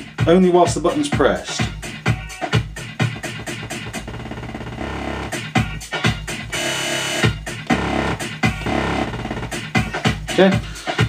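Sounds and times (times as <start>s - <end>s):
electronic dance music stuttering: 0.3s - 10.6s.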